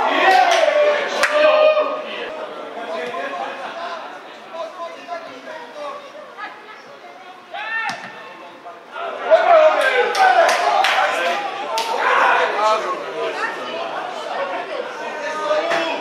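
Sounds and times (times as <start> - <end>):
voices shouting and talking: 0.0 - 16.0.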